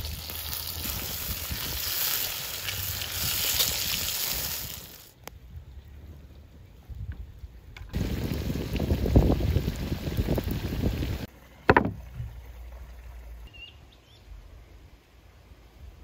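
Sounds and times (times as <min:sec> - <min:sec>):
food sizzling in hot oil: 0:00.0 - 0:05.1
sharp knock: 0:11.7 - 0:12.0.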